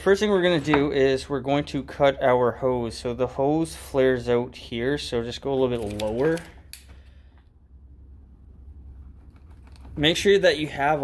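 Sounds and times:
steady low hum: 6.4s - 11.0s.

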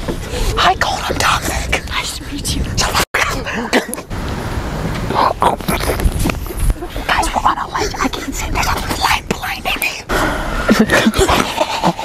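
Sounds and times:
people whispering: 6.7s - 10.1s.

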